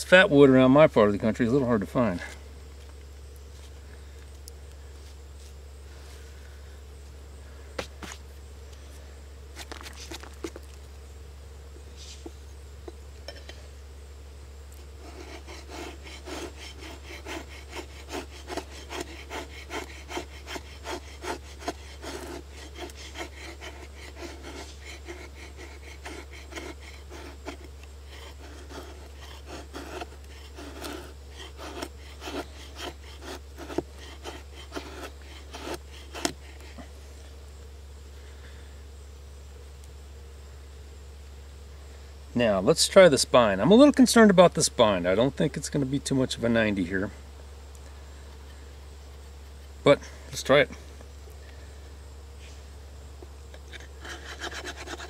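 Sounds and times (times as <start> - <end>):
knife scraping wood: 9.5 - 10.8, 14.8 - 36.9, 53.5 - 55.0.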